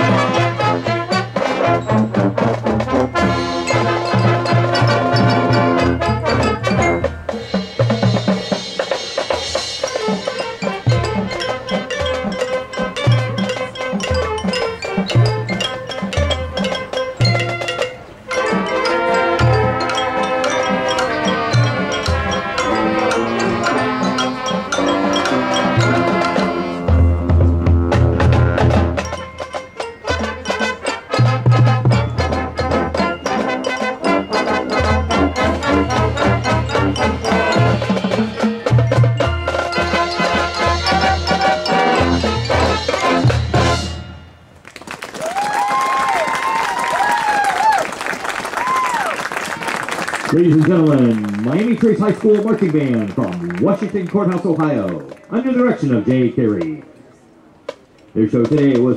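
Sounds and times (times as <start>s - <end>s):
brass chords: 0.0s - 44.6s
sharp percussion strikes: 0.0s - 44.6s
crowd applauding and cheering: 44.6s - 55.4s
crowd whooping: 44.8s - 51.6s.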